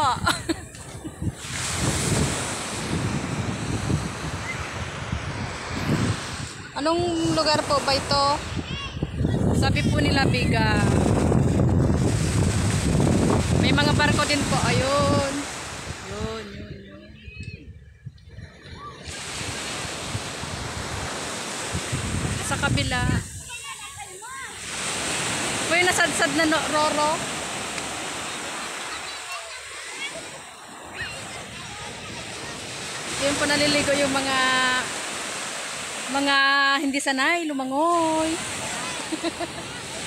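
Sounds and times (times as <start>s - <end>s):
ocean surf washing up beach: 0.0s - 16.9s, 18.4s - 40.0s
wind on microphone: 0.0s - 29.0s, 29.9s - 40.0s.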